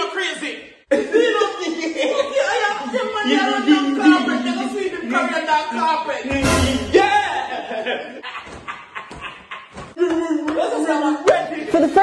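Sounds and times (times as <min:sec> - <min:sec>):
people talking: 0:00.0 - 0:08.1, 0:10.0 - 0:12.0
man laughing: 0:00.9 - 0:05.5, 0:07.0 - 0:09.9.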